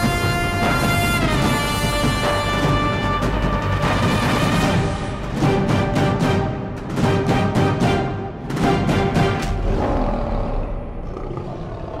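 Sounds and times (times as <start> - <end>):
dramatic music: 0.0 - 11.5
lion roar sound effect: 9.5 - 12.0.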